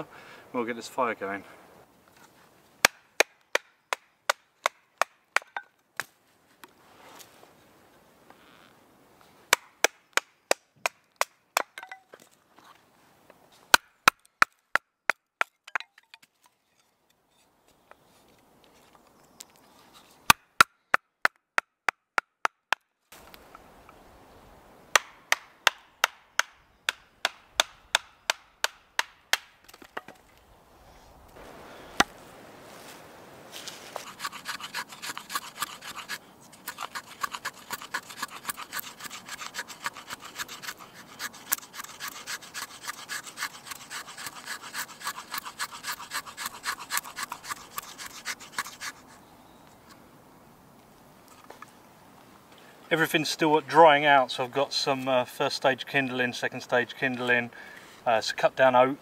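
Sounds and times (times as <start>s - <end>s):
sharp wooden knocks: 24.9s - 30.2s
knife scraping wood: 33.6s - 49.3s.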